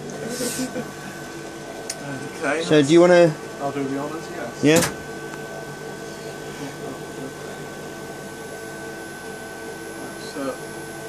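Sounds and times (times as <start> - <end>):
electrical hum with high whine: 0.0 - 11.0.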